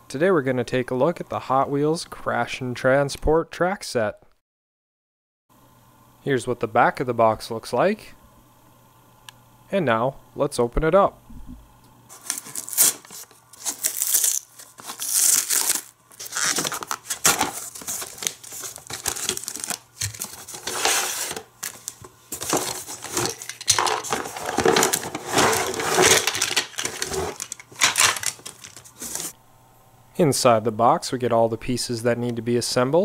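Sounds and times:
cardboard being cut and torn: 12.1 - 29.3
cardboard packaging rustling: 12.1 - 29.4.

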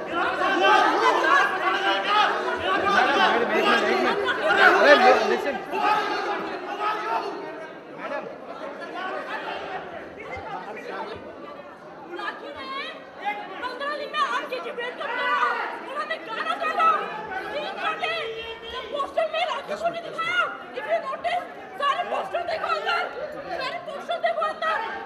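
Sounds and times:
crowd chatter: 0.0 - 25.0
voices arguing: 0.0 - 25.0.

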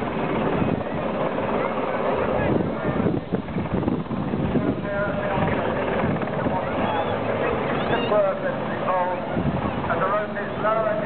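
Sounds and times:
distant helicopter hovering: 0.0 - 11.0
spectators chattering: 0.0 - 11.0.

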